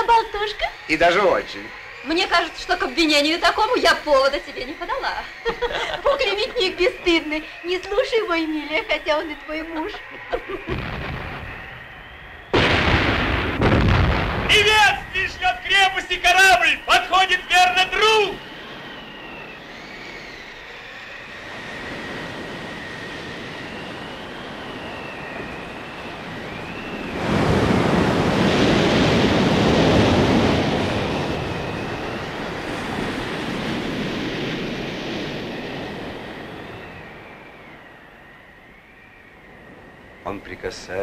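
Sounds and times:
breaking surf surge: 0:00.0 - 0:19.9, 0:20.6 - 0:37.8
wind howling: 0:00.0 - 0:41.0
rough sea washing: 0:21.4 - 0:37.8.

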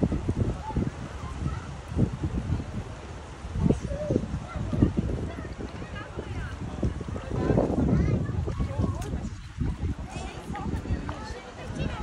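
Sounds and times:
people talking in background: 0:00.0 - 0:12.0
wind buffeting microphone: 0:00.0 - 0:12.0.

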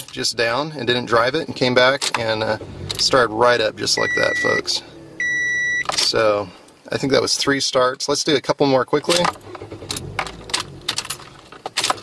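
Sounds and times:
low steady hum: 0:00.0 - 0:11.7
car keys jingling: 0:09.1 - 0:12.0.

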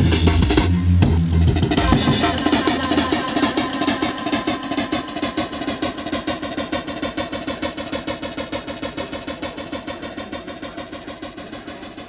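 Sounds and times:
stuttering electronic music loop: 0:00.0 - 0:12.0.

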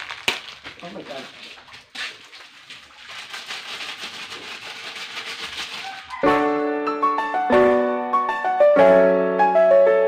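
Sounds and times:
water running into washing machine: 0:01.0 - 0:06.1.

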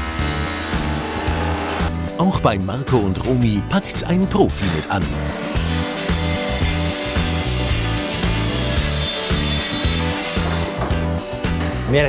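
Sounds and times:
background music with bass beat: 0:00.0 - 0:12.0
circular saw cutting board: 0:05.6 - 0:10.8.

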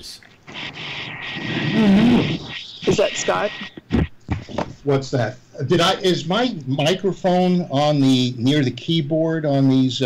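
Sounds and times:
rasping buzzy noise: 0:00.4 - 0:04.8.

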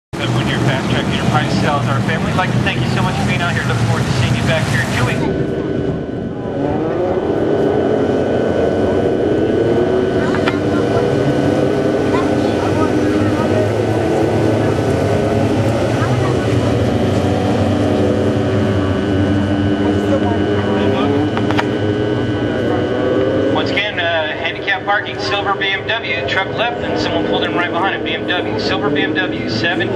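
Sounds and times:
race car engines running: 0:00.1 - 0:29.9.

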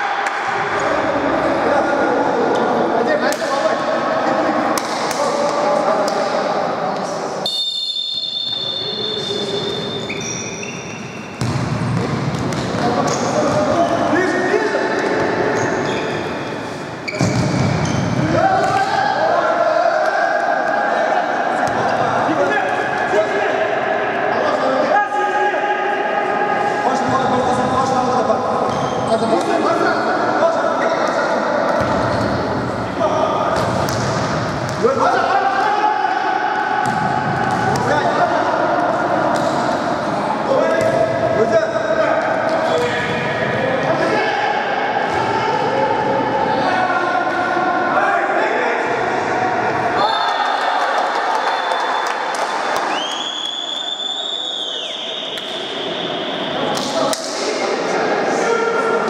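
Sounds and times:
ball kicks and bounces on court: 0:11.4 - 0:13.7
players shouting: 0:11.8 - 0:27.1, 0:31.7 - 0:41.4.

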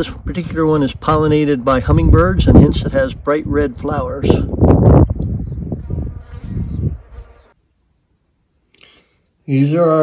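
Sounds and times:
wind rumbling on microphone: 0:00.0 - 0:07.4
insect buzzing: 0:05.3 - 0:07.6.

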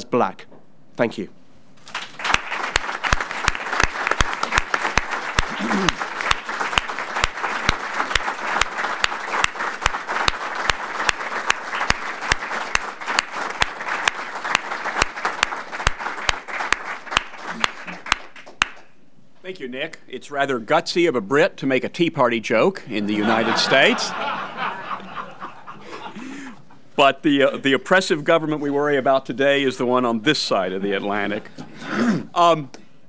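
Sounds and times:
audience applauding: 0:01.8 - 0:18.9
close sharp claps: 0:01.8 - 0:19.0.

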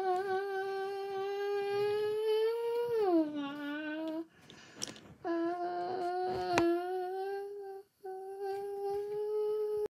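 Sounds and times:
person humming: 0:00.0 - 0:04.3, 0:05.2 - 0:09.9.

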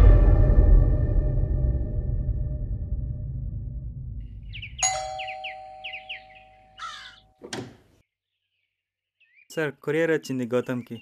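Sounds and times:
low music drone: 0:00.0 - 0:04.2
harsh bird calls: 0:04.4 - 0:07.4, 0:08.3 - 0:11.0
two-tone doorbell chime: 0:04.8 - 0:06.8.

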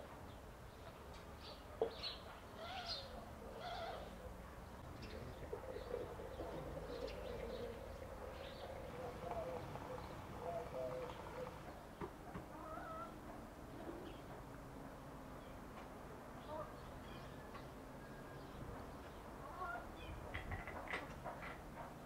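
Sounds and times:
birds chirping: 0:00.3 - 0:12.9.

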